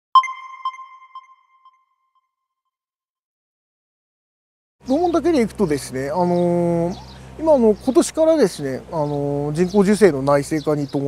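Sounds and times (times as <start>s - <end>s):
electronic chime echoes: 0.2s - 1.9s.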